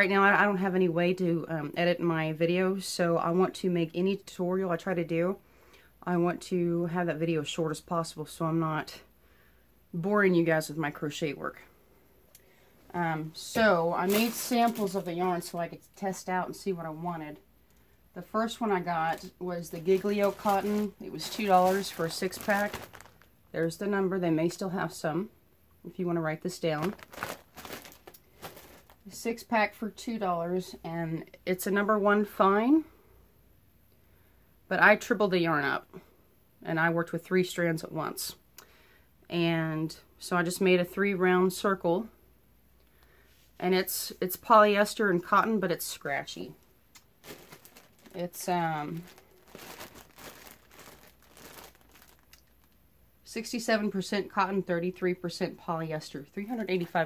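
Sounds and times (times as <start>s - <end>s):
plastic bag crinkling: 13.3s - 16.3s, 18.2s - 23.8s, 26.4s - 29.2s, 45.8s - 52.8s.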